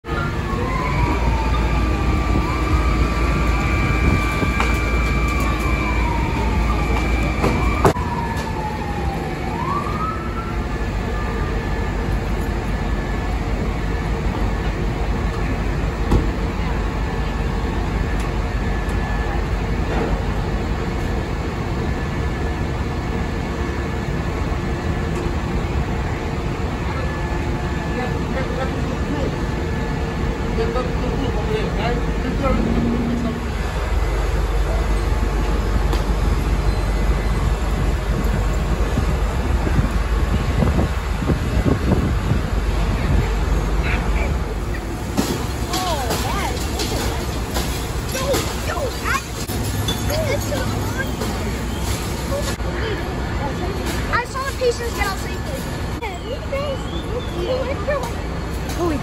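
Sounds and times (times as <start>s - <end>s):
fire truck engines droning: 0.0s - 59.0s
fire truck sirens wailing: 0.0s - 59.0s.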